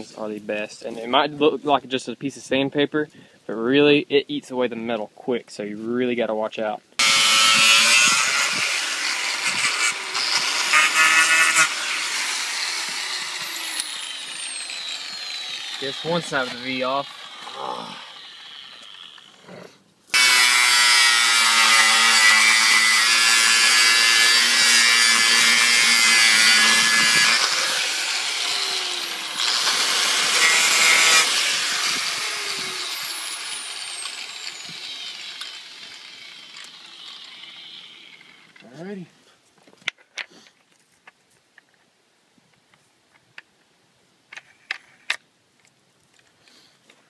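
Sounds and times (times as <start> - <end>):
angle grinder grinding metal: 7.0 - 19.5, 20.1 - 38.8.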